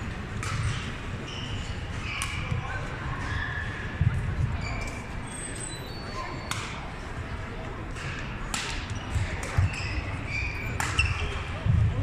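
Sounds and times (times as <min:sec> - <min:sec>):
sneakers squeaking on court: 0:00.5 - 0:06.6, 0:09.0 - 0:11.5
racket striking shuttlecock: 0:08.0 - 0:09.8.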